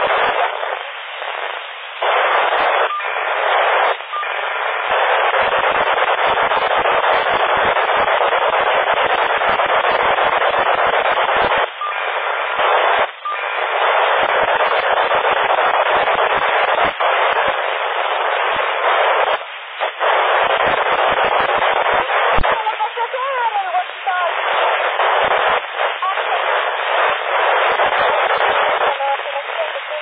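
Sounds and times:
radio static hiss: 0:00.0 - 0:30.0.

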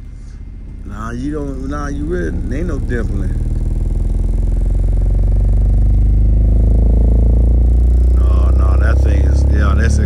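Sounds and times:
distorted rising bass sine sweep: 0:00.8 - 0:10.0.

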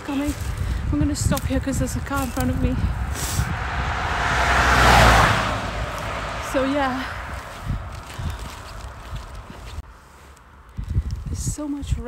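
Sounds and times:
car passing close by: 0:02.9 - 0:09.5.

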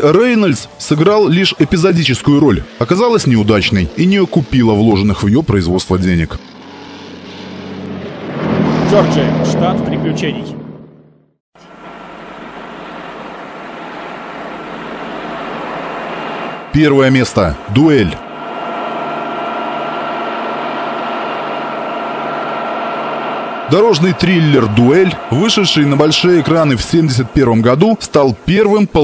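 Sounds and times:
truck engine droning: 0:00.0 - 0:29.0.

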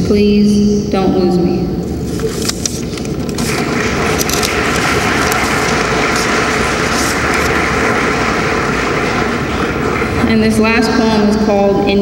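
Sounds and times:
audience applauding: 0:03.0 - 0:11.4.

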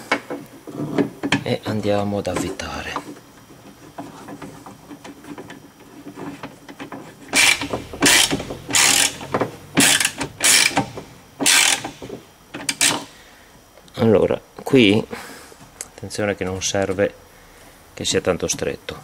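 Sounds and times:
ratchet wrench clicking: 0:07.4 - 0:12.0, 0:12.7 - 0:13.1.

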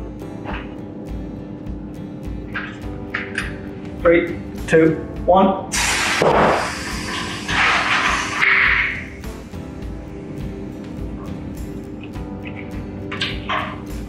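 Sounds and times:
compressed air blast hissing: 0:05.7 - 0:09.4.

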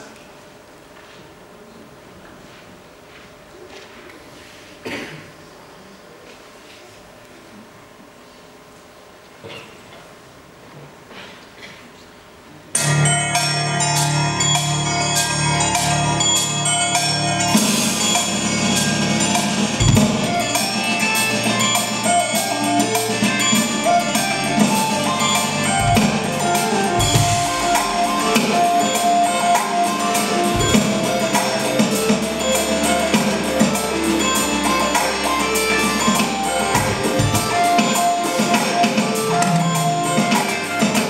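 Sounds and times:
backing track: 0:12.8 - 0:41.0
electronic drum kit: 0:12.8 - 0:41.0
deep bass: 0:23.4 - 0:37.8.

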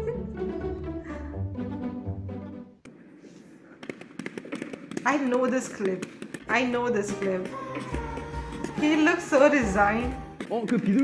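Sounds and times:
object flapping with sharp snaps: 0:03.7 - 0:06.5.

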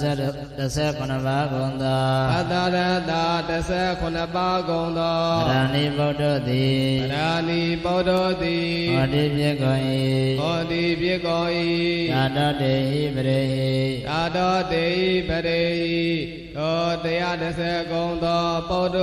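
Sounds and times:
monk chanting: 0:00.0 - 0:19.0.

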